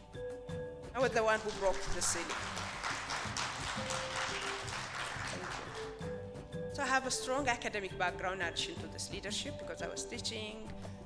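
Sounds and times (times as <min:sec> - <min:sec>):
background music: 0:00.0 - 0:11.0
audience applauding: 0:01.3 - 0:06.2.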